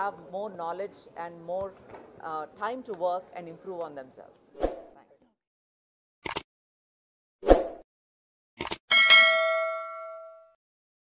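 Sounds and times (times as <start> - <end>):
bright bell ding: 8.9 - 10.6.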